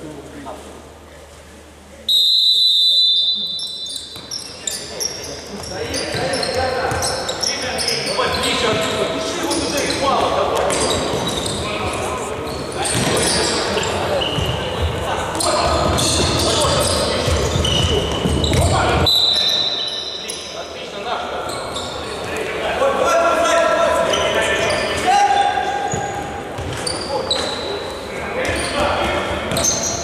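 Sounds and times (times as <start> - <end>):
referee's whistle blast: 2.1 - 4.2, 19.0 - 20.2
shoes squeaking on floor: 3.1 - 20.6, 21.3 - 22.4, 24.0 - 30.0.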